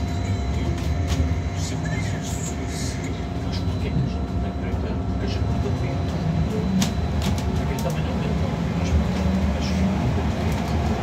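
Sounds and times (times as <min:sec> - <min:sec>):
bus interior road rumble: 0:00.0 - 0:11.0.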